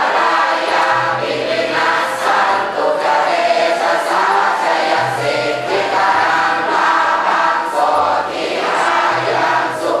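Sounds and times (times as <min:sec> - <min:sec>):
congregation chanting in unison: 0:00.0 - 0:10.0.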